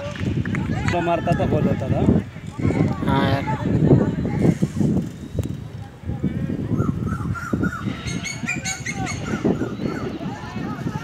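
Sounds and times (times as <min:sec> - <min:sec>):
distant voices: 0:00.0 - 0:11.0.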